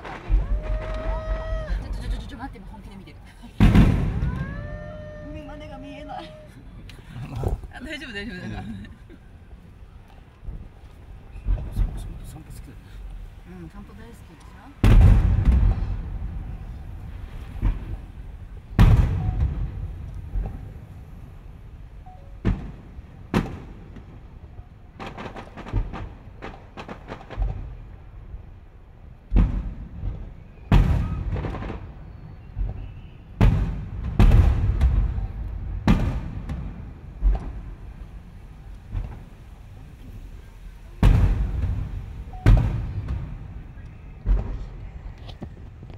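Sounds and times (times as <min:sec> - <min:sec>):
small firework pops: 0:00.0 - 0:02.5, 0:10.0 - 0:13.3, 0:14.4 - 0:21.2, 0:22.4 - 0:28.1, 0:29.2 - 0:45.9
fireworks booming: 0:00.0 - 0:45.9.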